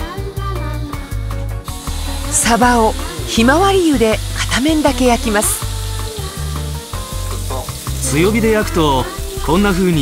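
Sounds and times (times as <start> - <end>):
fish sizzling in a frying pan: 1.6 - 10.0.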